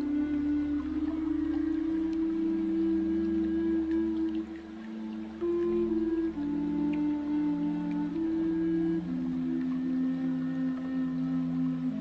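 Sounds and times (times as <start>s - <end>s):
slow ambient music: 0.0s - 12.0s.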